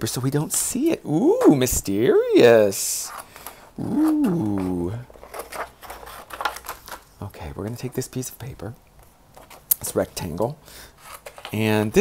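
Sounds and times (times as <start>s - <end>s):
paper rustling and crackling: 3.0s - 7.3s, 11.0s - 11.7s.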